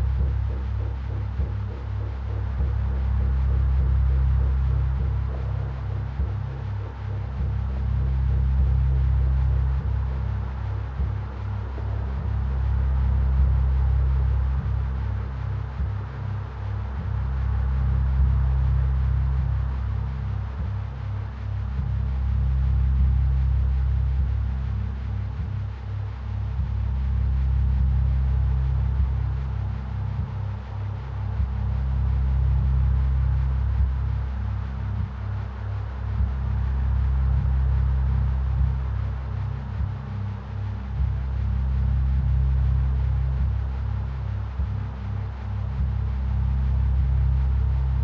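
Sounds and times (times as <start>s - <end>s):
deep bass drone: 0.0s - 48.0s
pulsing low hum: 0.0s - 48.0s
soft sparse percussion: 0.0s - 48.0s.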